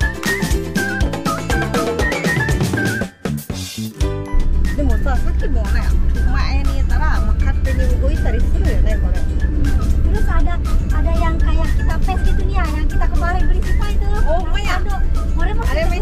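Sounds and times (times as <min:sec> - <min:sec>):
music: 0:00.0 - 0:16.0
people talking: 0:04.7 - 0:16.0.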